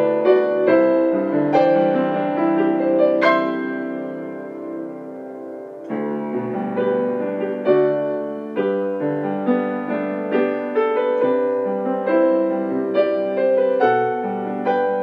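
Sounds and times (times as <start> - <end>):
piano playing hymn chords: 0.0 - 15.0.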